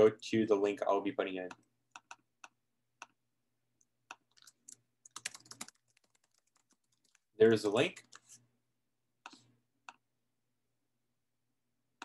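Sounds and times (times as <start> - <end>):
faint computer keyboard typing: 1.5 - 3.2, 3.8 - 7.3.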